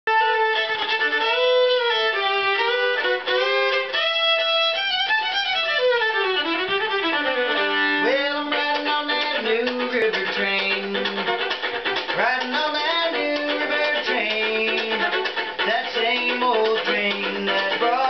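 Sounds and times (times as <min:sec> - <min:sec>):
fiddle playing lively tune: 0:00.1 - 0:18.0.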